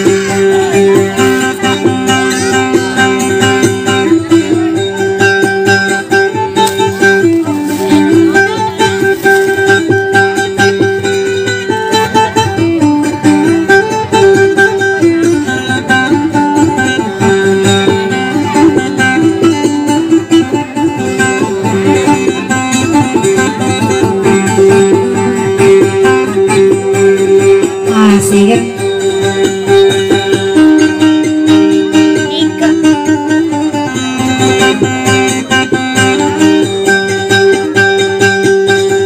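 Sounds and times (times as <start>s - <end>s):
acoustic guitar plucked melody: 0.0s - 39.0s.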